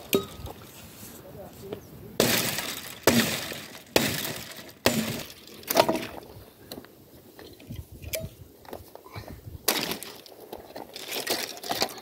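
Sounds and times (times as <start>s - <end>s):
mattock striking stony ground: 0.0s - 6.8s, 9.6s - 12.0s
crunching scattering rattle: 2.2s - 6.3s, 9.6s - 12.0s.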